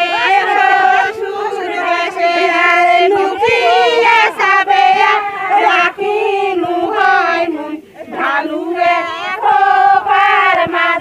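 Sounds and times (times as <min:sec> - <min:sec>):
women singing together: 0:00.0 - 0:11.0.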